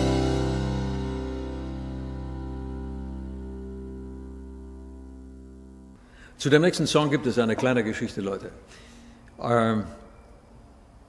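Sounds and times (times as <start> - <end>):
acoustic band chord ringing: 0.0 - 8.2.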